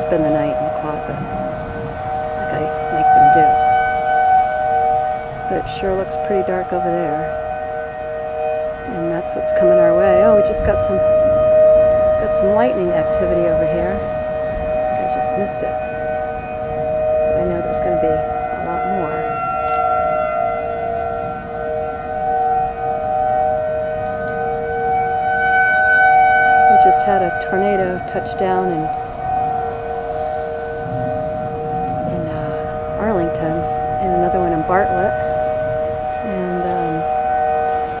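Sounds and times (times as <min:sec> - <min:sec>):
tornado warning sirens wailing: 0:00.0 - 0:38.0.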